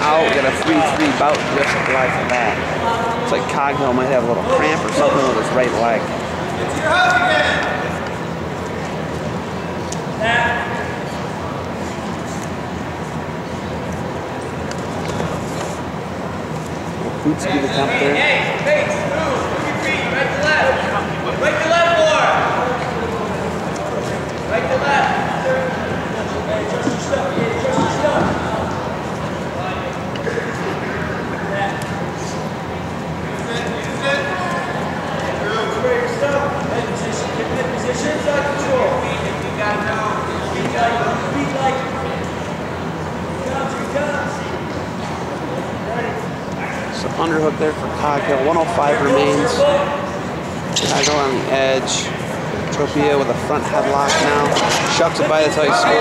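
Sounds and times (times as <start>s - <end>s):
gymnasium room noise: 0.0s - 56.0s
voices calling out and chattering: 0.0s - 56.0s.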